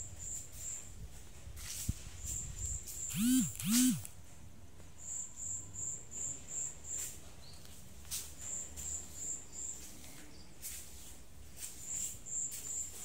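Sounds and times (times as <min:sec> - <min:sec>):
insect chirping: 0:03.1 - 0:04.1.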